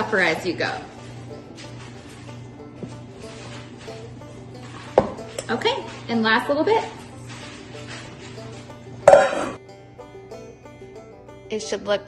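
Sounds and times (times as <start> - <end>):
metal mixing bowls clattering: 0.0 - 9.6
light background music: 0.0 - 12.0.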